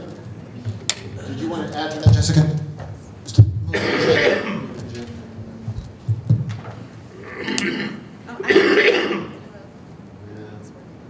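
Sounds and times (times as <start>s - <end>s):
woman clearing her throat: 3.7s - 4.8s, 7.2s - 9.4s.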